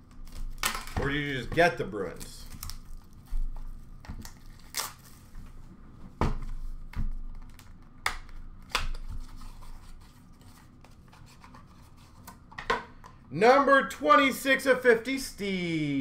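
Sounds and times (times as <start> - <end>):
hands handling cardboard and plastic: 0.0 - 12.7.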